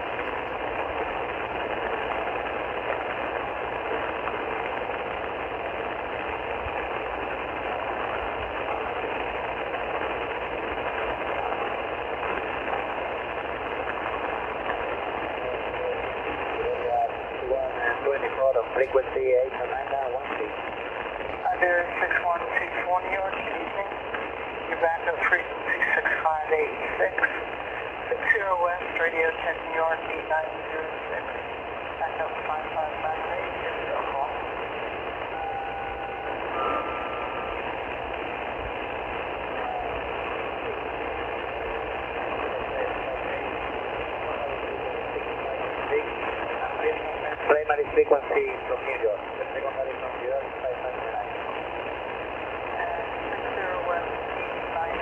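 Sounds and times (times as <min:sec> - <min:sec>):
faint radio voices: 0:00.0 - 0:55.0
radio static hiss: 0:00.0 - 0:55.0.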